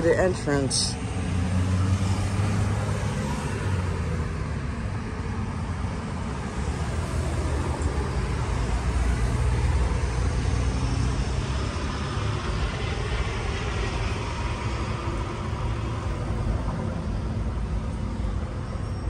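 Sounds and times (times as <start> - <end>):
street traffic rumble: 0.0 - 19.0.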